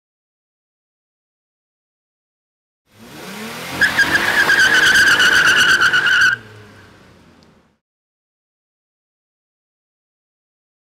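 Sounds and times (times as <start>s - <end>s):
car tires screeching: 3.0s - 7.4s.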